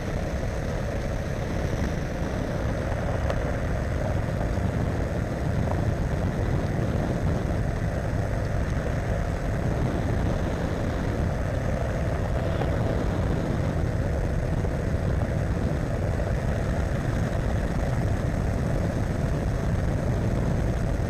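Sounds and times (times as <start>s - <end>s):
aircraft engine and propeller: 0.0s - 21.0s.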